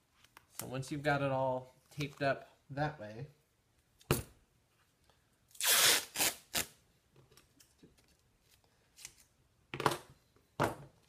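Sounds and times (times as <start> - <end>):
masking tape ripping: 5.5 - 6.8.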